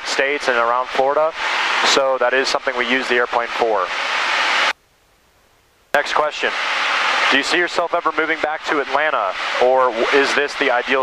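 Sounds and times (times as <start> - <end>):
aircraft cockpit noise: 0.0 - 11.0.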